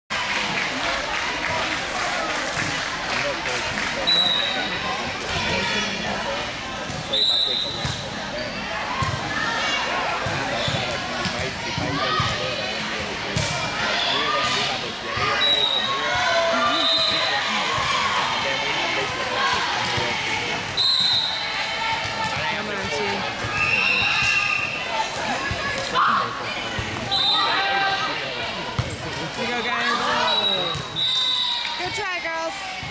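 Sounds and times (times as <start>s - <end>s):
chatter and calls: 0.2s - 32.9s.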